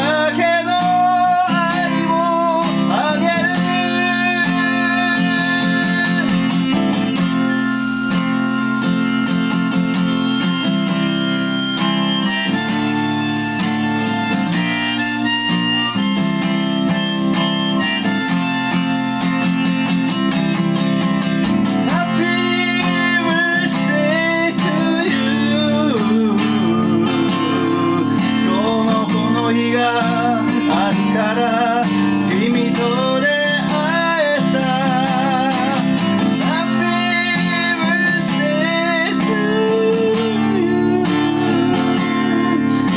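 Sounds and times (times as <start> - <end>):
acoustic guitar strummed: 0.0 - 42.9
harmonica: 0.0 - 42.9.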